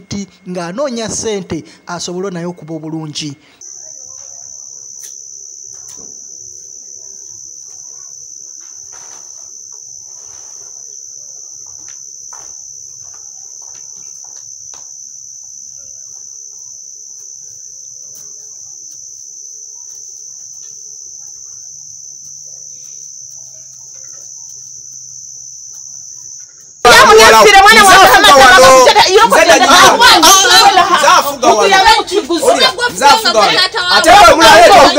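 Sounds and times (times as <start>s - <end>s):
crickets trilling: 0.0s - 34.9s.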